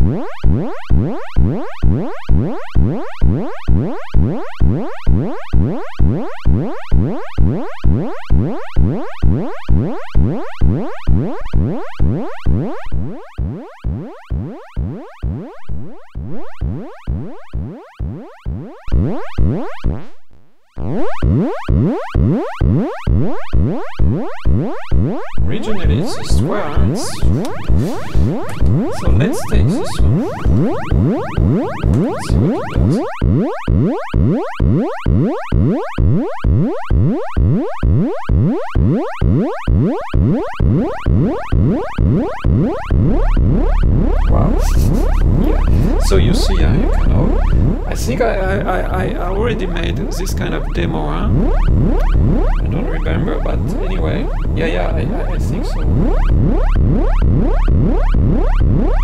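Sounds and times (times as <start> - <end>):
synthesizer upward sweeping notes: 0.0 - 59.0
low buzz: 11.1 - 38.9, 40.1 - 59.0.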